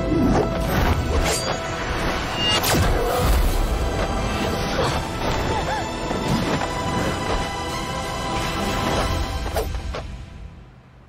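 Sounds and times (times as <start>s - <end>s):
dramatic soundtrack music: 0.0s - 11.0s.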